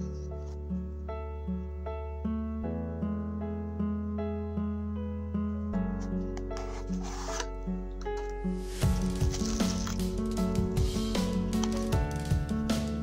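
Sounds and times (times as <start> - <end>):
background music: 0.0 - 13.0
paper and card rubbing: 6.0 - 7.6, 8.9 - 10.4
cardboard box being handled: 6.6 - 7.5, 9.0 - 10.0.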